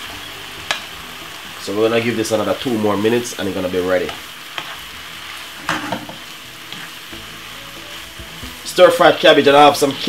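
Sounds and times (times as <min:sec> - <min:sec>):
vegetables sizzling in a frying pan: 0:00.0 - 0:10.0
wooden spatula scraping a pan: 0:04.6 - 0:07.0.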